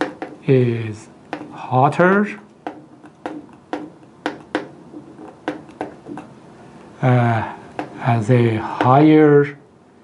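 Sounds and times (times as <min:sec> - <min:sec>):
marker writing on whiteboard: 0:00.0 - 0:06.4, 0:07.6 - 0:09.1.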